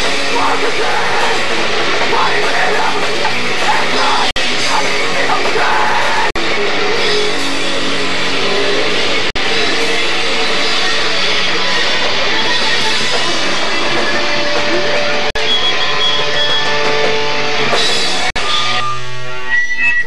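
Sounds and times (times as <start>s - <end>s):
live rock band playing: 0.0s - 19.9s.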